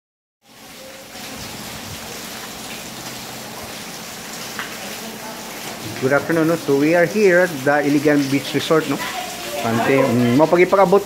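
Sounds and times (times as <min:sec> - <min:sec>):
steady rain hiss: 0:00.4 - 0:11.0.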